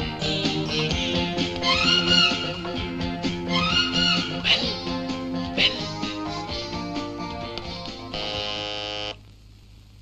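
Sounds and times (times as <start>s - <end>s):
electric doorbell buzzer: 8.1s - 9.2s.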